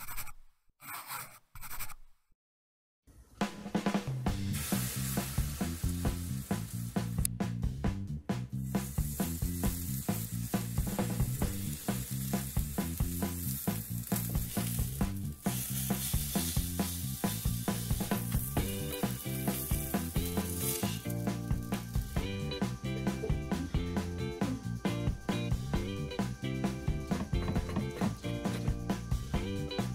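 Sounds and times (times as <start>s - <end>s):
background music with beat: 4.0s - 29.9s
steak sizzling on griddle: 4.5s - 7.2s, 8.6s - 22.6s.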